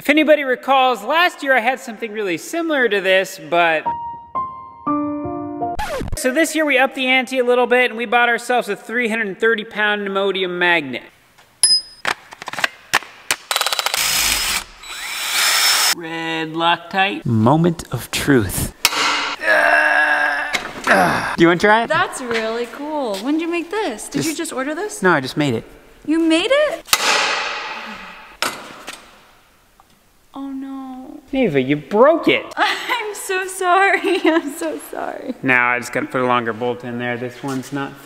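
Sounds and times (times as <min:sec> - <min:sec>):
cordless drill running: 0:13.5 - 0:16.0.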